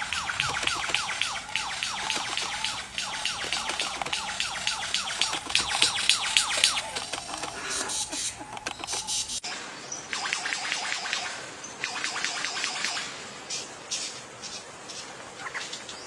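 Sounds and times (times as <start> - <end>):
lyrebird whistled song: 0.0 - 13.0
sharp bird clicks: 0.0 - 16.0.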